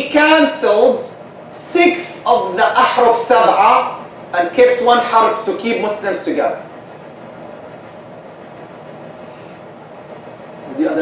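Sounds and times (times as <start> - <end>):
steady room hiss: 0.0 - 11.0.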